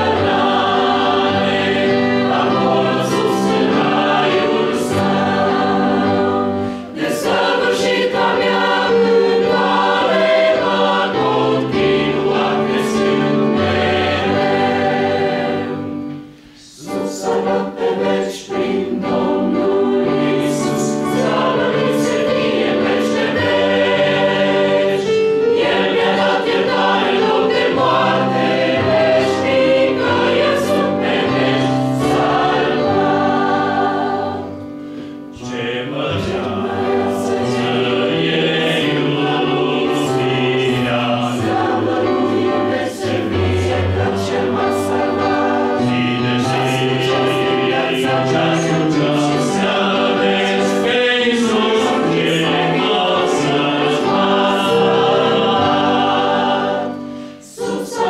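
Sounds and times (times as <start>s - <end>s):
choir singing: 0.0s - 58.0s.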